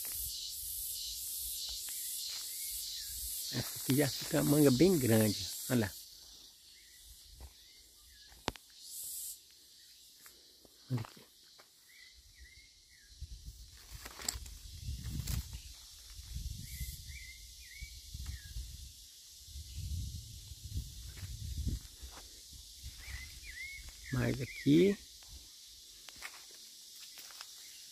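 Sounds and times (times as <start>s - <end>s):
steady high hiss: 0.0s - 10.0s
songbird chirping: 0.0s - 27.9s.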